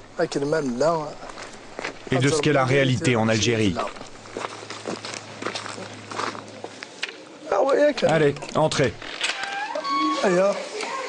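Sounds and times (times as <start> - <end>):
footsteps on dirt path: 1.2 - 2.1, 3.8 - 7.2.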